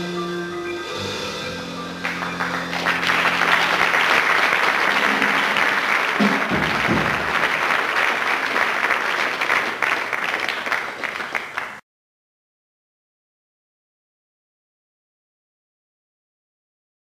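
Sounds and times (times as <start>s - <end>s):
jazz chord: 0.0s - 6.8s
small audience applauding: 2.0s - 11.8s.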